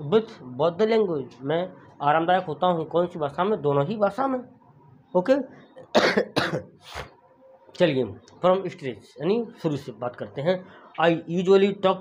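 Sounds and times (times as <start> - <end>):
man coughing: 5.9 - 7.1.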